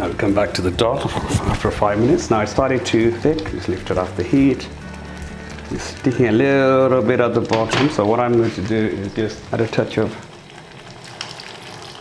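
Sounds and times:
dal bubbling and crackling: 0:00.7 - 0:12.0
water being poured: 0:09.1 - 0:12.0.

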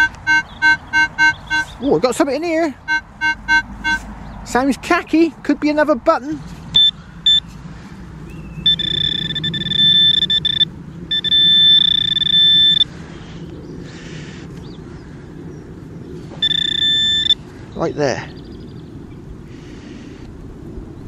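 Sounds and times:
metal detector probe buzzing: 0:00.0 - 0:01.8, 0:02.9 - 0:04.0, 0:06.8 - 0:07.4, 0:08.7 - 0:12.9, 0:16.4 - 0:17.4
rustling of soil and grass: 0:01.4 - 0:09.6.

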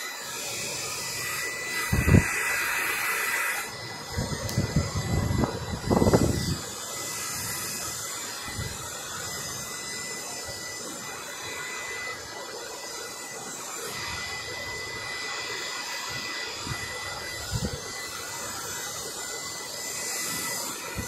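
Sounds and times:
hair dryer blowing: 0:00.0 - 0:21.0.

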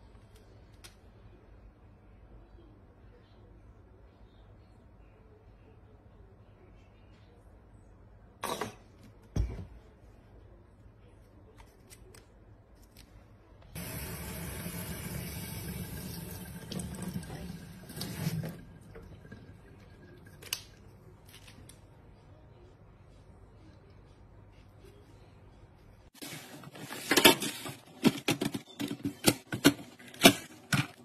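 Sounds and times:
tap water running into metal sink: 0:13.8 - 0:19.8.

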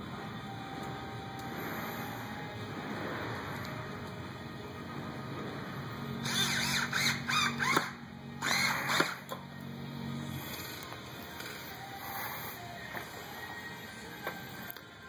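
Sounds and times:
high squealing: 0:06.1 - 0:09.3
cordless drill motor: 0:06.2 - 0:09.3.

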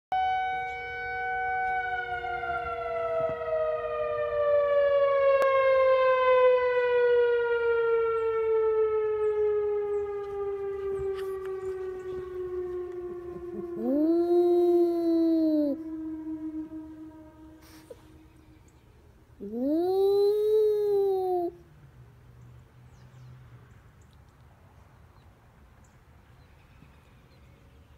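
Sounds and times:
warning siren wail: 0:00.1 - 0:21.6
dog howling: 0:13.3 - 0:17.0, 0:19.4 - 0:21.6.

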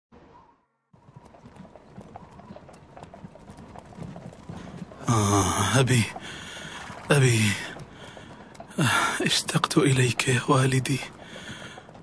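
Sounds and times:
horse hooves clip-clopping: 0:01.0 - 0:12.0.

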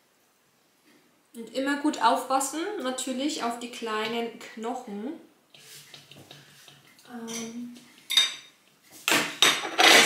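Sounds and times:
ceramic dishes clinking: 0:07.3 - 0:08.6.

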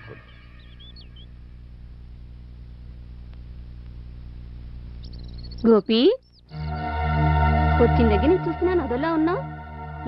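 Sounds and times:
faint bird chirping: 0:00.0 - 0:02.1, 0:04.0 - 0:07.0
low background hum: 0:00.0 - 0:06.8.

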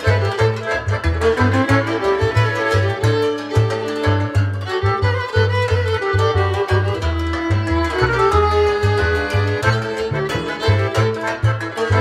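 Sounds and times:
accordion: 0:00.0 - 0:12.0
cimbalom: 0:00.0 - 0:12.0
double bass: 0:00.0 - 0:12.0
violin melody: 0:00.0 - 0:12.0.

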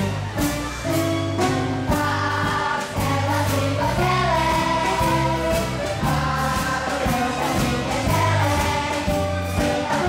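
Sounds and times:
musical accompaniment with beat: 0:00.0 - 0:10.0
children's choir singing: 0:01.6 - 0:10.0.

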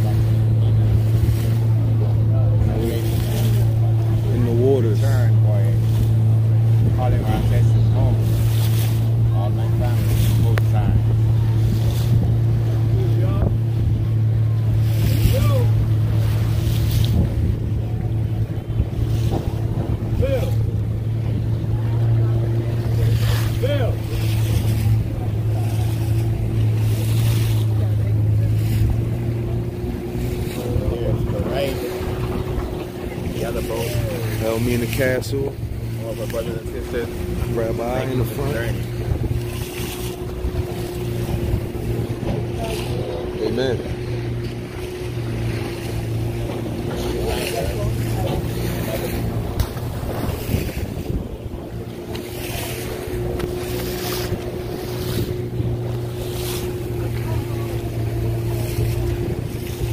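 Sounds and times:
outboard motor running: 0:00.0 - 0:59.9
water splashing against hull: 0:00.0 - 0:59.9.

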